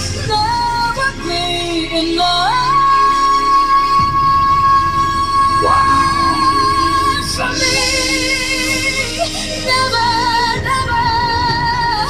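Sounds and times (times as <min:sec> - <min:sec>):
woman singing high notes: 0:02.6 - 0:10.5.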